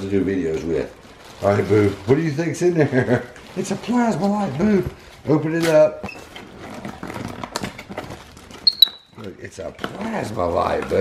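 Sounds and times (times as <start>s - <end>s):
paper and cardboard rustling: 0.0s - 11.0s
monkey squeaking: 8.6s - 9.2s.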